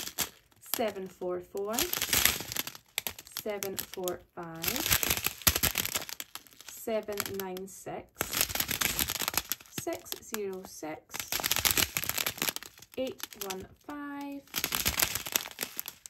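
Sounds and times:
plastic bags crinkling: 0:00.0 - 0:16.0.

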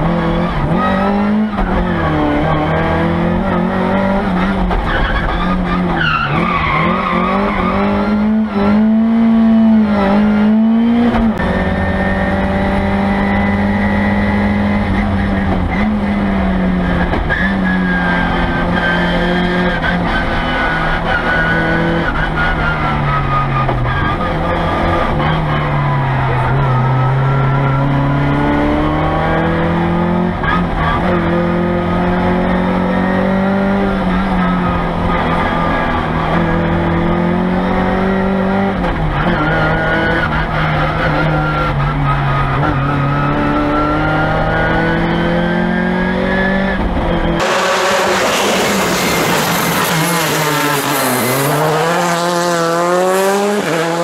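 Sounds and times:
car engine revving in cabin: 0:07.7 - 0:17.3, 0:42.4 - 0:54.0.

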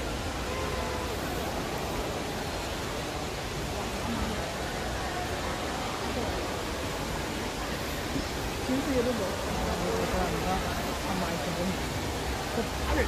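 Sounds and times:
faint voices: 0:00.0 - 0:13.0
indoor waterfall rushing: 0:00.0 - 0:13.0.

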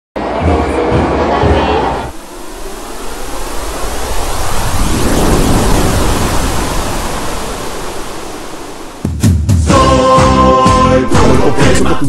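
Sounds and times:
rushing hiss: 0:02.1 - 0:09.2.

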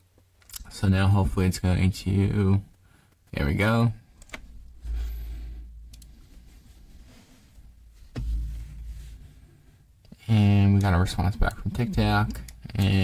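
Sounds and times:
soft low thumps: 0:04.5 - 0:10.0.

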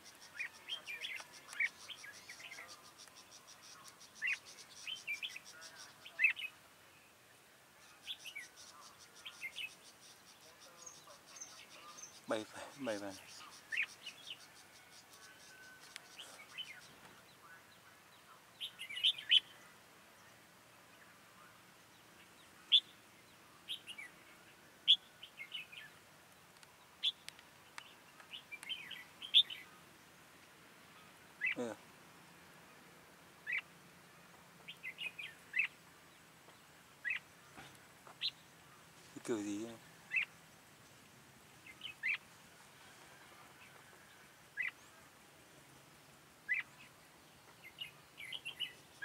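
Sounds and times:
birds chirping: 0:00.0 - 0:49.0.

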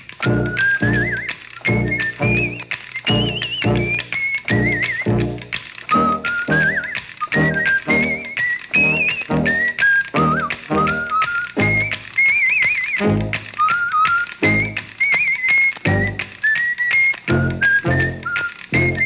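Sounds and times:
high whistle-like melody: 0:00.0 - 0:19.0
low beat notes: 0:03.1 - 0:06.7.

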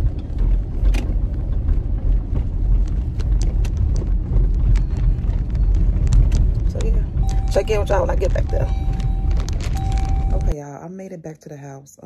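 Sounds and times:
road and engine rumble: 0:00.0 - 0:10.6.

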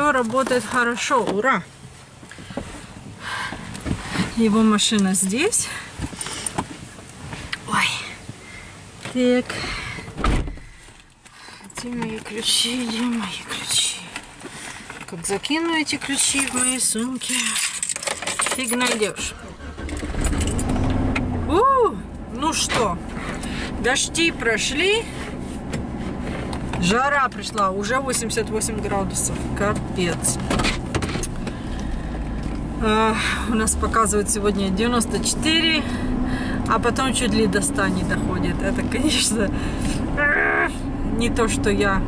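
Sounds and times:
rustling and handling in a vehicle: 0:00.0 - 0:42.0
keys jingling: 0:16.1 - 0:19.2
car engine running: 0:18.4 - 0:42.0.

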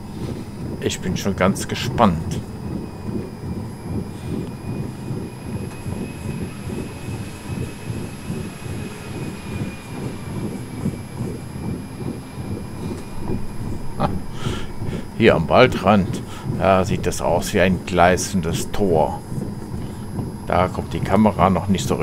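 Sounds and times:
faint high whine: 0:00.0 - 0:22.0.

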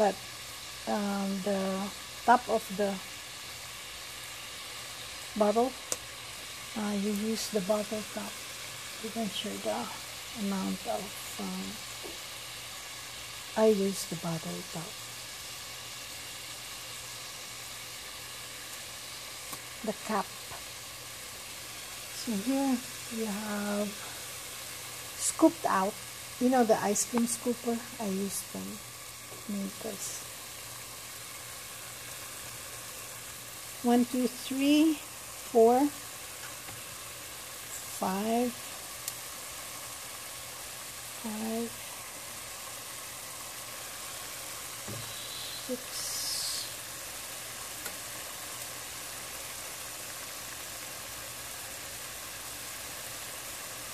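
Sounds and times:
water boiling in a pan: 0:00.0 - 0:53.9.

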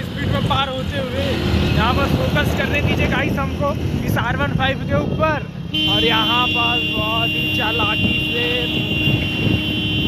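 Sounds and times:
voices: 0:00.0 - 0:09.4
wind rumble on microphone: 0:07.8 - 0:10.0.

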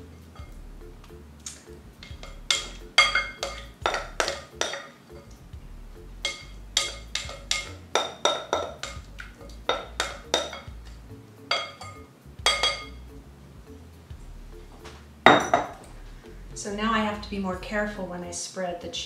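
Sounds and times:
spoon clinking against bowl: 0:02.0 - 0:05.4, 0:06.2 - 0:10.7, 0:11.5 - 0:13.0.

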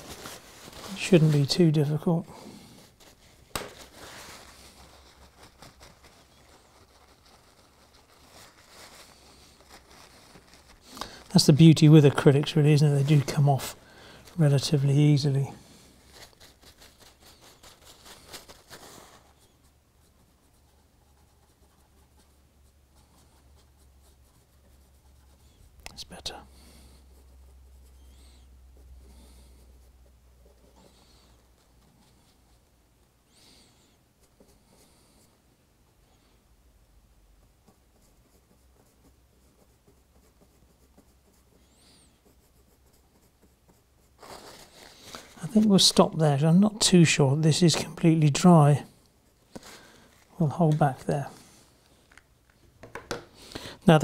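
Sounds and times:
paintbrush scratching: 0:00.0 - 0:32.8, 0:33.4 - 0:35.4, 0:37.3 - 0:52.4
man's voice: 0:45.4 - 0:48.9, 0:50.4 - 0:51.4.

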